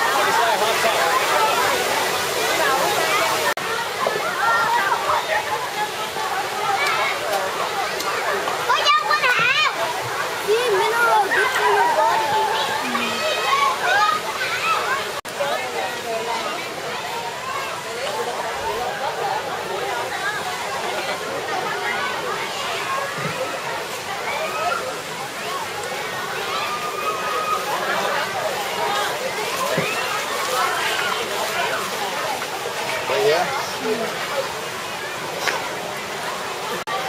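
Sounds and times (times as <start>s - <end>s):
crowd talking and calling: 0.0s - 37.0s
water sloshing and splashing: 19.6s - 37.0s.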